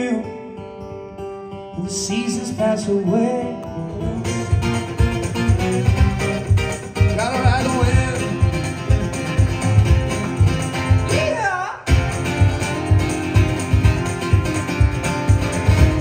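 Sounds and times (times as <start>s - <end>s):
man singing: 0.0s - 0.6s, 1.7s - 4.9s, 7.0s - 9.1s, 10.9s - 12.0s
acoustic guitar with steady beat: 0.0s - 16.0s.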